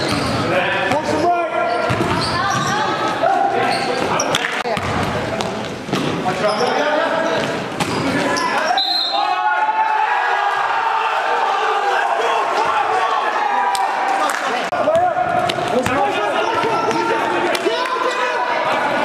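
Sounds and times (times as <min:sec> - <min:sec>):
voices of players and spectators: 0:00.0 - 0:19.0
basketball bouncing on gym floor: 0:01.9 - 0:02.8, 0:04.0 - 0:06.1.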